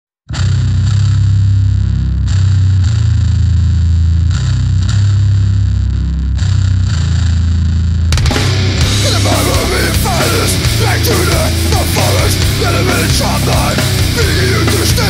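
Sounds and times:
distorted electric bass notes: 0.3s - 15.0s.

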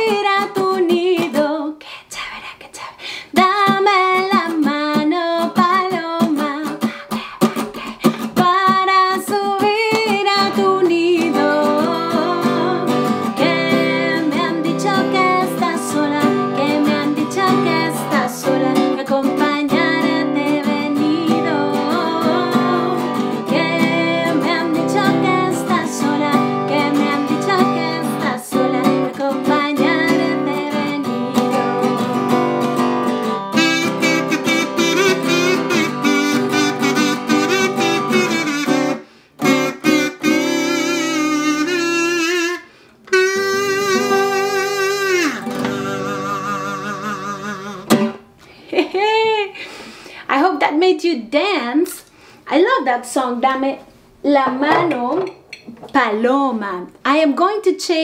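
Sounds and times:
woman singing: 0.0s - 32.6s
strummed acoustic guitar: 3.4s - 41.8s, 42.4s - 48.3s
harmonica melody: 11.2s - 29.2s, 29.8s - 48.3s.

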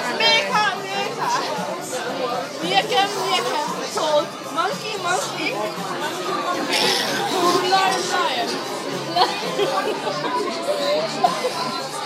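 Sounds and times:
background music: 0.0s - 12.0s
people talking over one another: 0.0s - 12.0s.

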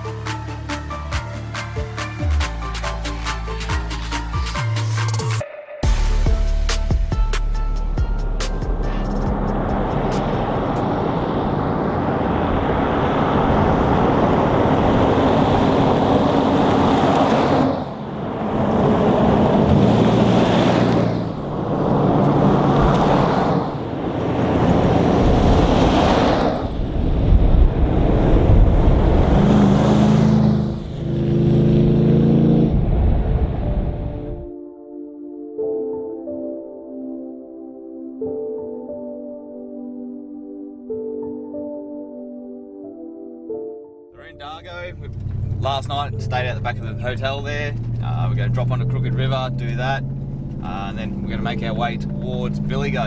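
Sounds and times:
music playing: 0.0s - 10.9s, 33.5s - 45.0s
vehicles passing on road: 7.7s - 34.5s, 44.2s - 53.0s.

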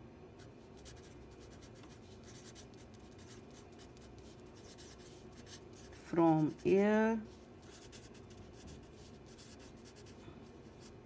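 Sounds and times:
marker writing on paper: 0.8s - 6.8s, 7.6s - 10.2s.

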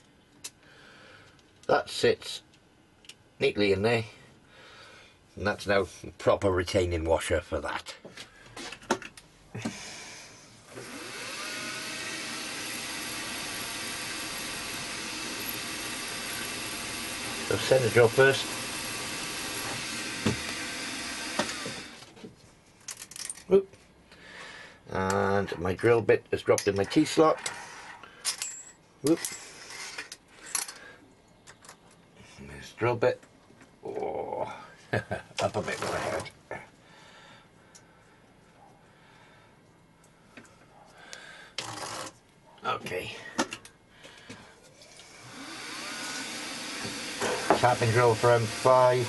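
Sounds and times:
drill bit clicking on metal: 10.8s - 22.0s, 45.0s - 49.0s
milling machine spindle running: 10.8s - 22.0s, 45.0s - 49.0s.

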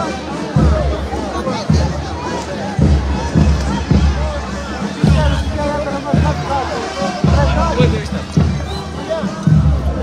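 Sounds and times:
band music with heavy drum beat: 0.0s - 10.0s
crowd shouting and singing along: 0.0s - 10.0s.

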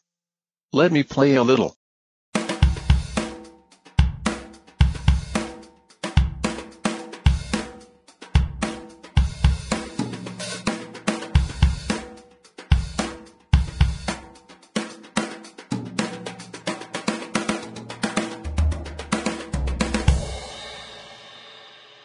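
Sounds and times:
snare drum: 2.4s - 21.1s
cymbals: 14.8s - 22.0s.

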